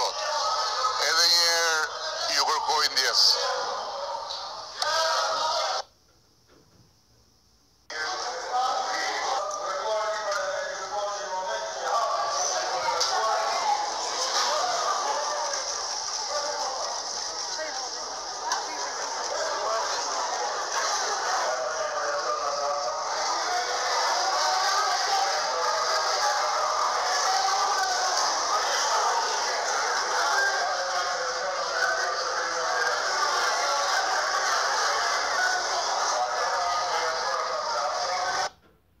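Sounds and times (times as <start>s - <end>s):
babble of many voices: 0.0s - 5.9s, 7.9s - 38.6s.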